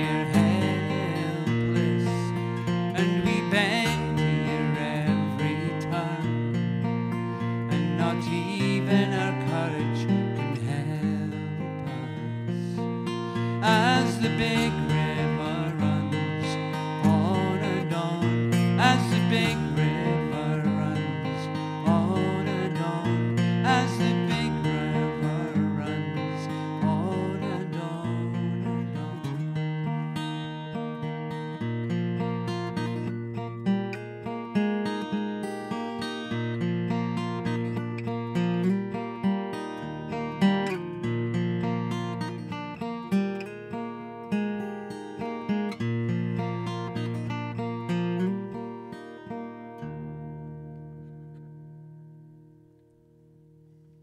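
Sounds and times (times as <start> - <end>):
acoustic guitar riff: 0.0 - 54.0.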